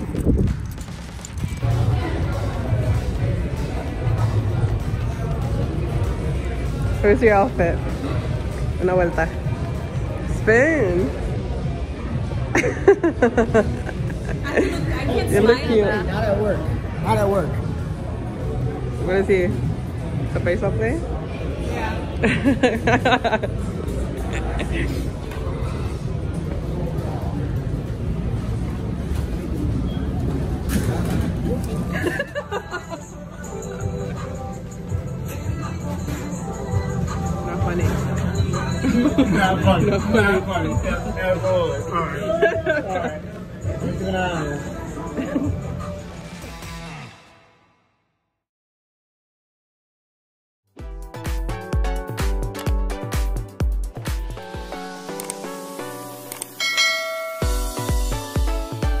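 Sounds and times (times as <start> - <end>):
kick drum beat: 50.8 - 54.4, 57.4 - 59.0
electronic music: 50.8 - 59.0
bell chime: 56.6 - 58.2.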